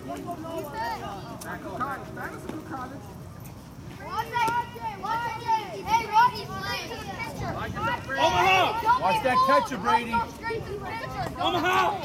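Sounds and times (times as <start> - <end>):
people shouting: 7.6 - 10.2.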